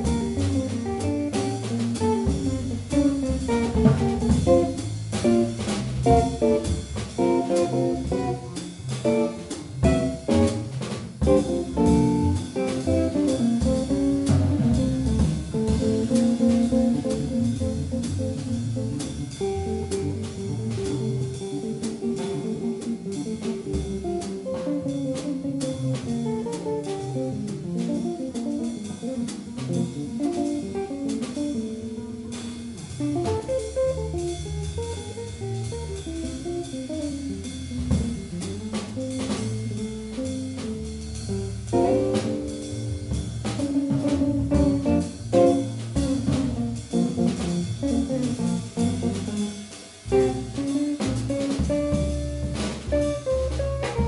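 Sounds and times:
drum kit with cymbals: 0:00.0 - 0:54.0
upright double bass: 0:00.0 - 0:54.0.

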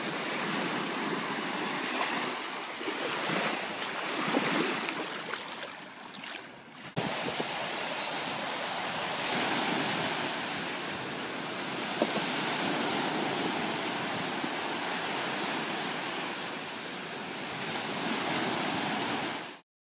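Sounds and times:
waves washing on sandy shore: 0:00.0 - 0:19.6.

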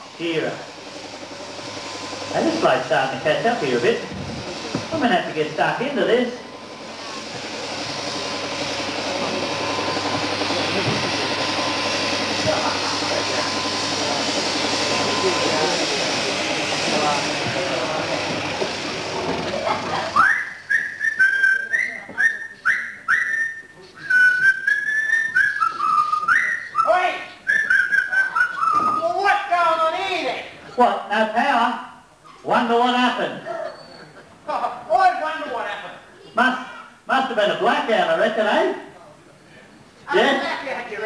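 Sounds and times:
shearing machine whirring: 0:00.0 - 0:30.8
person whistling sliding notes: 0:20.2 - 0:26.9, 0:27.5 - 0:29.0.

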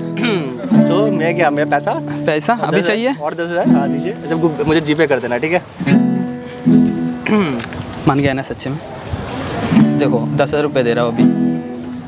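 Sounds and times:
acoustic guitar strumming: 0:00.0 - 0:08.6, 0:09.3 - 0:12.0
people talking: 0:00.2 - 0:05.7, 0:07.2 - 0:11.5.

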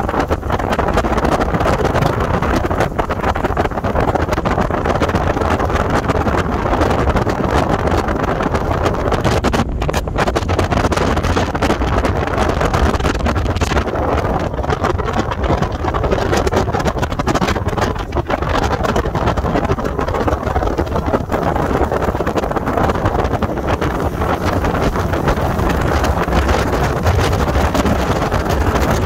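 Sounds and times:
outboard motor running: 0:00.0 - 0:29.0
wind buffeting microphone: 0:00.0 - 0:29.0.

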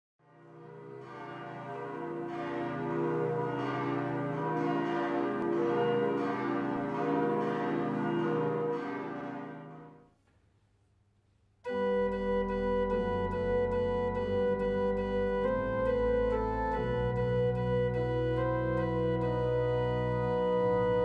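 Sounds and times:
church bells pealing: 0:00.3 - 0:10.0.

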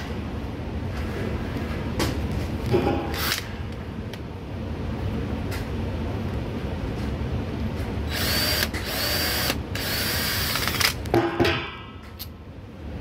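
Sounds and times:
steady low hum: 0:00.0 - 0:13.0
cordless drill whine: 0:08.1 - 0:10.9.

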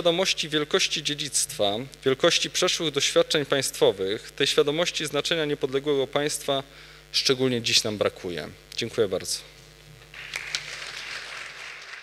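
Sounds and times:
audience applause: 0:10.2 - 0:12.0.

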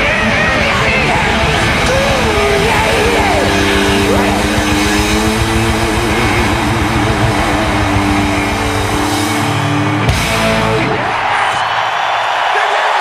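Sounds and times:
bass guitar: 0:00.0 - 0:11.4
distorted electric guitar: 0:00.0 - 0:11.7
drums: 0:00.0 - 0:12.9.

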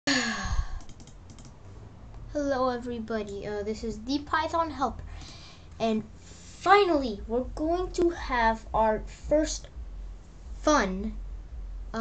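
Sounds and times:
person sighing: 0:00.1 - 0:00.9
faint clicks: 0:00.7 - 0:02.2.

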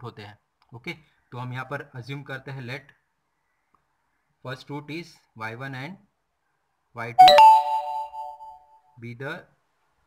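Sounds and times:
electronic doorbell chime: 0:07.2 - 0:08.6.

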